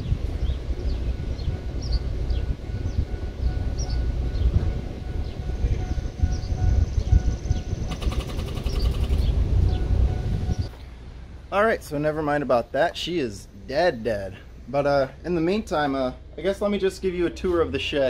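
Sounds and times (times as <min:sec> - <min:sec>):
birds chirping: 0:00.4 - 0:10.8
car engine cranking without starting: 0:07.5 - 0:10.6.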